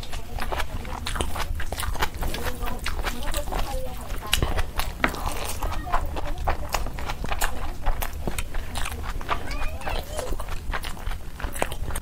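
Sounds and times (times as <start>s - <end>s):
fingers squelching food: 0.0s - 12.0s
wet chewing: 0.0s - 12.0s.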